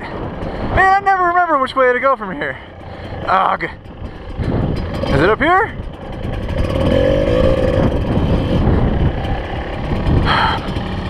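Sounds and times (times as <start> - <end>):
dirt bike engine at low revs: 0.0 - 11.0.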